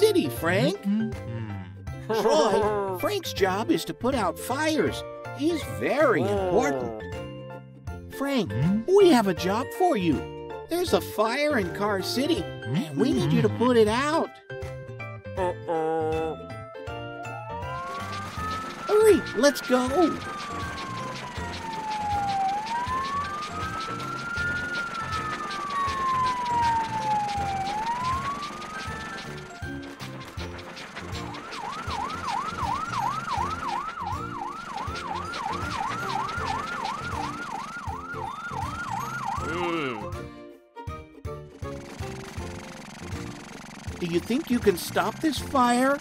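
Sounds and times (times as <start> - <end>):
fire truck siren: 17.3 - 40.0.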